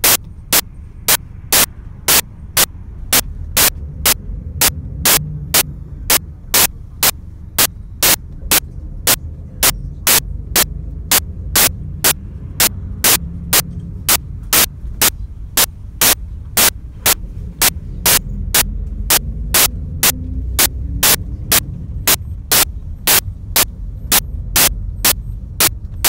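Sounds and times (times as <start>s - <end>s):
sharp click-like bursts: 0.0s - 14.7s, 15.6s - 16.7s, 17.6s - 26.0s
steady low rumble: 0.0s - 26.0s.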